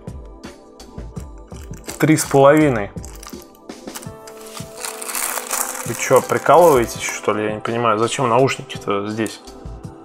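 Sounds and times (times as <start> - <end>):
plastic bag crinkling: 1.3 - 7.3.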